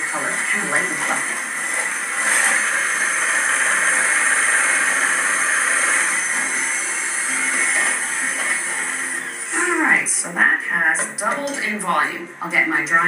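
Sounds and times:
electric mixer whirring: 0.0s - 11.2s.

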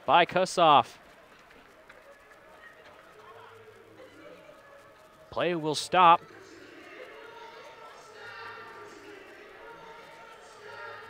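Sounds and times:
murmur of distant voices: 0.0s - 11.0s.

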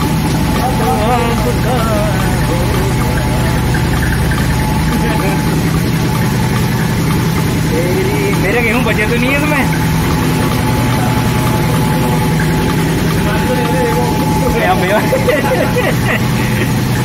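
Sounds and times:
faint voices: 0.0s - 17.0s
flour mill machine drone: 0.0s - 17.0s.

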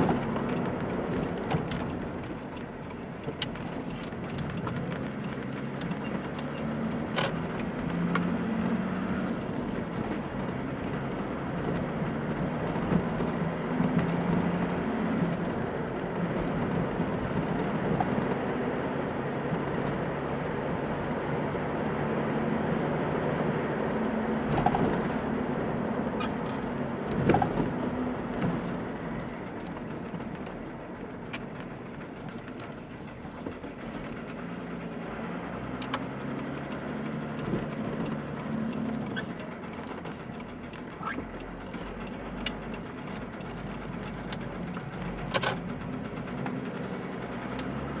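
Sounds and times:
car engine: 0.0s - 48.0s
sharp clicks and knocks: 35.6s - 47.9s.

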